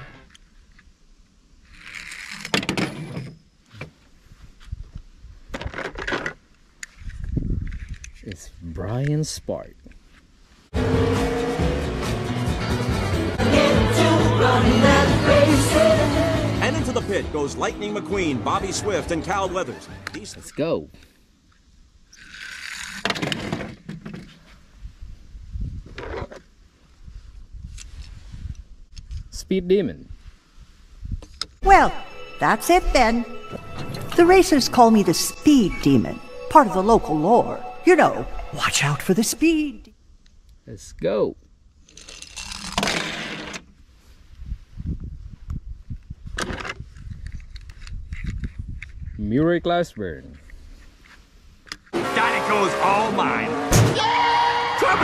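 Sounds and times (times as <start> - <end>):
toy car scraping on wood: 1.7 - 3.0, 22.1 - 24.3, 41.8 - 43.7.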